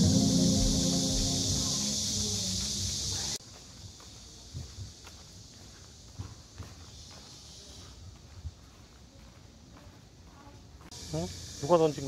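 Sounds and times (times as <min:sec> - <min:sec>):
high-pitched hiss: 0:00.0 - 0:08.1, 0:10.9 - 0:12.0
footsteps on pavement: 0:02.6 - 0:10.9.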